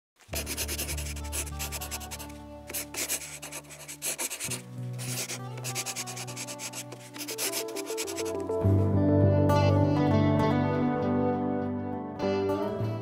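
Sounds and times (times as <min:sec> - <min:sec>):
chalk scratching on blackboard: 0:00.3 - 0:08.4
soft music with low tones: 0:00.3 - 0:13.0.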